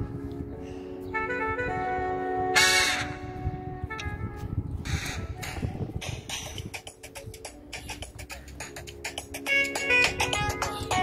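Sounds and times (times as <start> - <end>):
dance music: 5.0 - 11.0.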